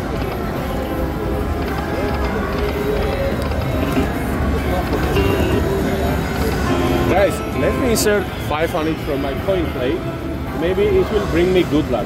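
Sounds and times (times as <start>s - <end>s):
slot machine game music: 0.0s - 8.2s
casino background hum: 0.0s - 12.0s.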